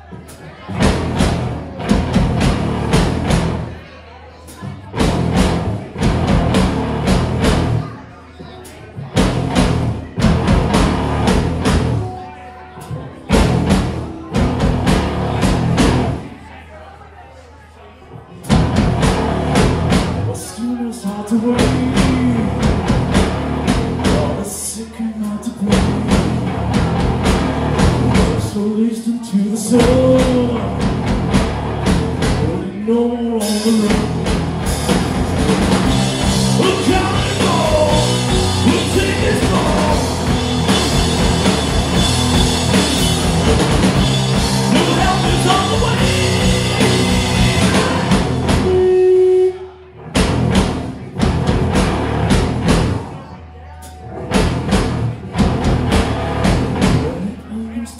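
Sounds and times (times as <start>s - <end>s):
heavy rock band playing: 0.1s - 3.8s, 4.6s - 8.0s, 9.0s - 16.4s, 18.4s - 53.2s, 53.8s - 57.4s
drum hits: 0.8s - 3.8s, 9.2s - 12.1s, 33.8s - 48.9s, 50.2s - 53.0s.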